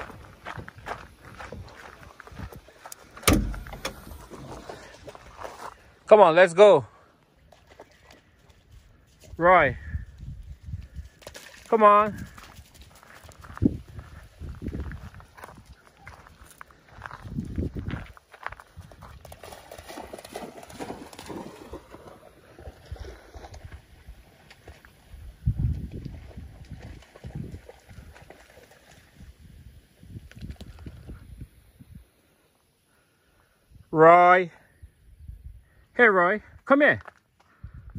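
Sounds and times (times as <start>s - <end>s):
low rumbles and thumps: 3.2s - 4.8s.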